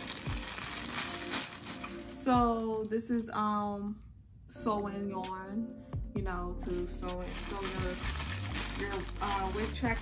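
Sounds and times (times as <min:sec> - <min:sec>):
plastic bag crinkling: 0:00.0 - 0:03.2, 0:07.2 - 0:10.0.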